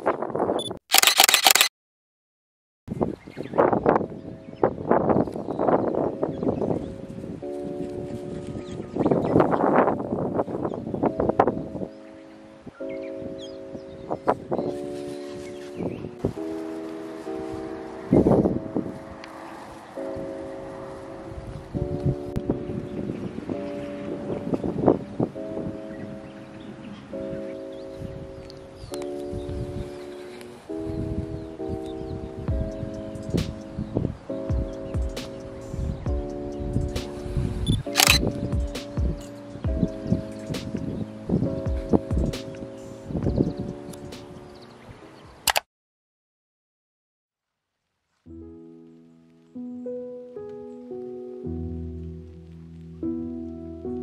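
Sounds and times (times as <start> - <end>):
gentle instrumental music: 3.6 - 45.2, 48.1 - 54.0
rustling in grass: 14.2 - 32.3.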